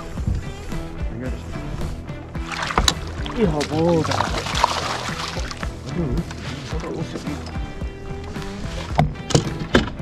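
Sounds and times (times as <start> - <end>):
background music: 0.0 - 10.0
fish thrashing and splashing: 2.4 - 7.6.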